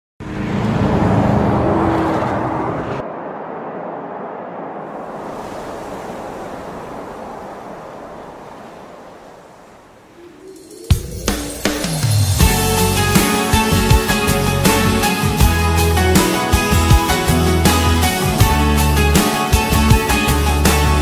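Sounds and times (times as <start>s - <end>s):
low engine-like drone: 0.2s - 5.7s
loud rush of noise: 0.2s - 13.8s
wind-like hiss: 3.0s - 13.0s.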